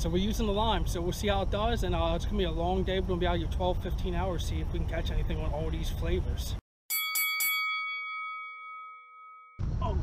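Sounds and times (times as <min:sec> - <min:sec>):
bell-like chime: 0:06.9 - 0:09.6.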